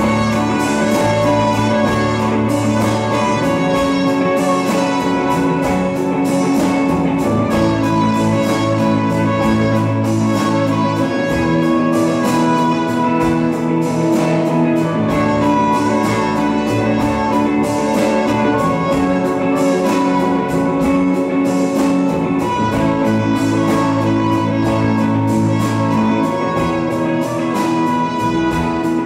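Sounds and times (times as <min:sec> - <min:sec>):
steady beat: 0:00.0 - 0:29.0
trumpet melody: 0:00.0 - 0:29.0.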